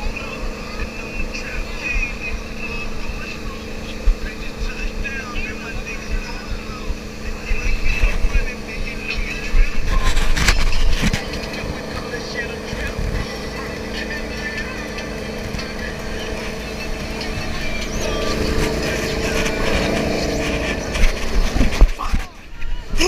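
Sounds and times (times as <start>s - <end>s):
boat engine running: 0.0s - 23.0s
churning wake rushing: 0.0s - 23.0s
wind buffeting microphone: 0.0s - 23.0s.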